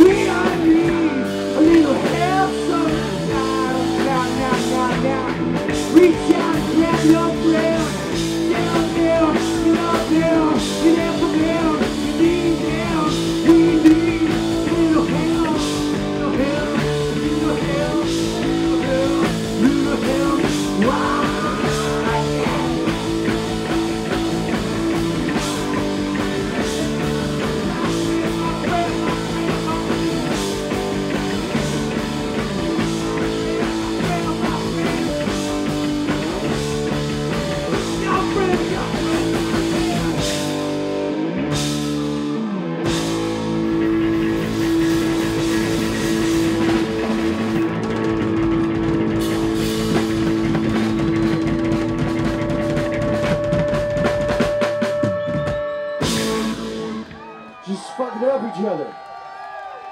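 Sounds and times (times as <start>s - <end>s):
live rock band playing: 0.0s - 59.1s.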